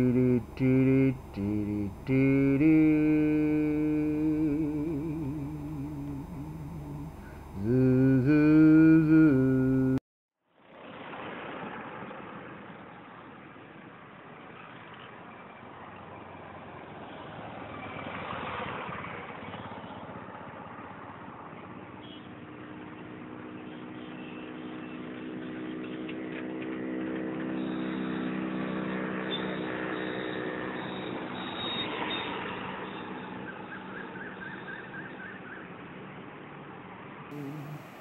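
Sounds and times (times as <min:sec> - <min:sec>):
rushing traffic noise: 0:00.0 - 0:09.4, 0:10.6 - 0:38.0
vehicle engine hum: 0:00.0 - 0:38.0.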